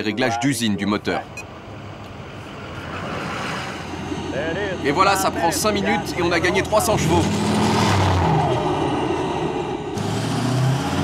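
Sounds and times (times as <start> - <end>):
vehicle low hum: 1.1 - 11.0.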